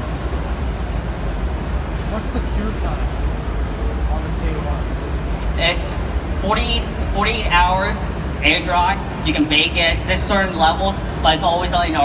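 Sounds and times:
exhibition hall din: 0.0s - 12.0s.

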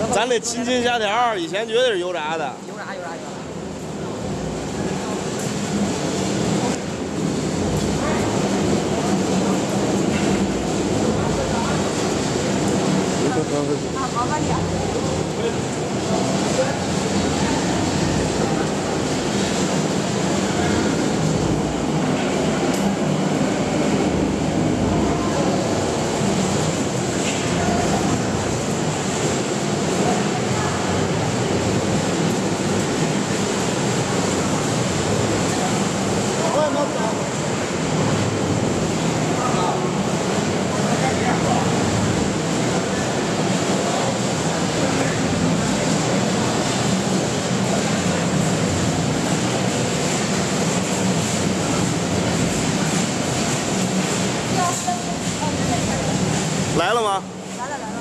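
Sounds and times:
factory machinery din: 0.0s - 58.0s.

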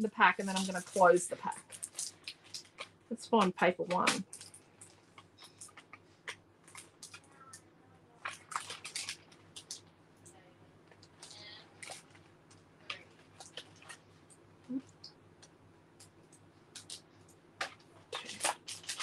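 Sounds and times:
cellophane crinkling: 0.0s - 9.9s, 10.9s - 15.1s, 16.7s - 19.0s.

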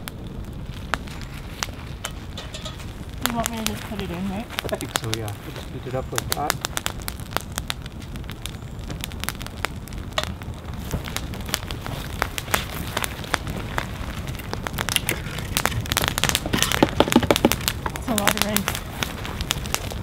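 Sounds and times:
campfire crackling and popping: 0.0s - 20.0s
dry sticks rattling together: 2.0s - 2.9s, 14.4s - 18.3s.

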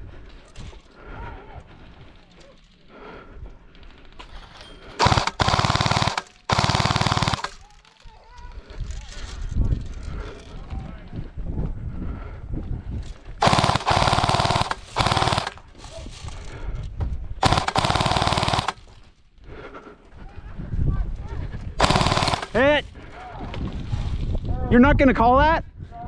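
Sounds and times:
airsoft machine gun bursts: 5.0s - 7.6s, 13.4s - 15.6s, 17.4s - 18.9s, 21.8s - 22.8s.

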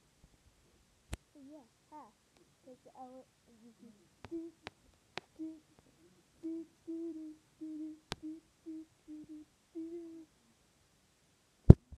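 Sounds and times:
boy humming short notes: 1.4s - 4.7s, 5.3s - 10.4s.

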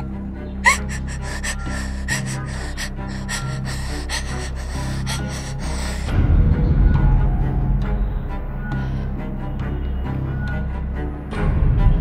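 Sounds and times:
dramatic music drone: 0.0s - 12.0s
gasping breaths: 0.6s - 6.2s
woman crying: 0.6s - 6.2s.

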